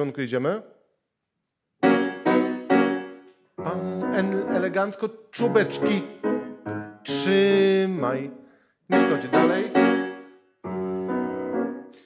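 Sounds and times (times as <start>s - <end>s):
grand piano arpeggios: 1.8s - 12.0s.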